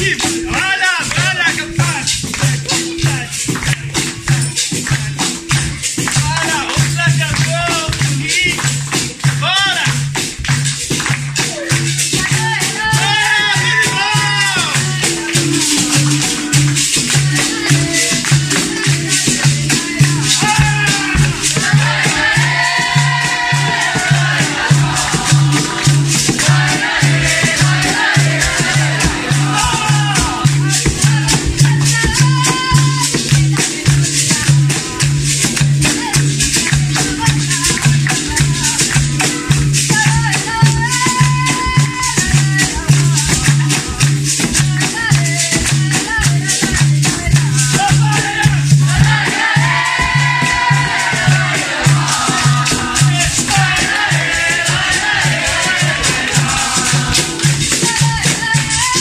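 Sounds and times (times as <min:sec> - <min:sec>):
hand drum beat: 0:00.0 - 0:59.0
hand-clapping: 0:00.0 - 0:59.0
call-and-response singing: 0:11.5 - 0:59.0.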